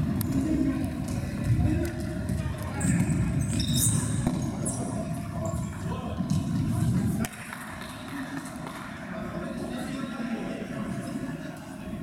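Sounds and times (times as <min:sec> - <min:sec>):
shoe squeaks on floor: 0:02.8 - 0:05.6.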